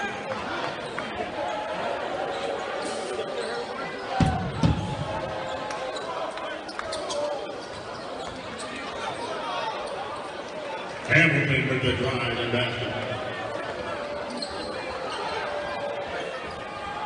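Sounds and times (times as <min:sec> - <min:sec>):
crowd voices hubbub: 0:00.0 - 0:17.0
basketball bouncing on court: 0:04.2 - 0:05.3.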